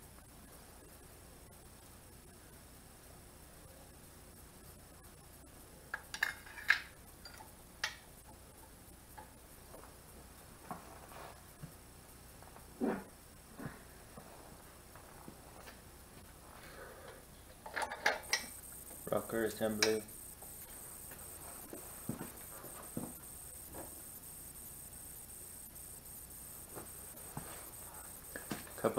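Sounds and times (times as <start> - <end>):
metal engine parts clinking: 5.9 - 8.0, 17.6 - 18.5.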